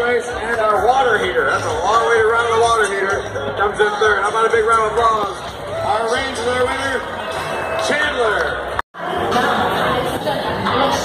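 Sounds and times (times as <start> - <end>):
chatter in a large room: 0.0 - 11.0
crowd noise: 0.0 - 11.0
music over loudspeakers: 0.0 - 11.0.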